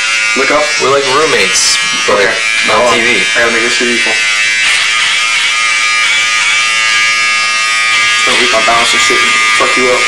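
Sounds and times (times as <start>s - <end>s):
electric hair clippers buzzing: 0.0s - 10.0s.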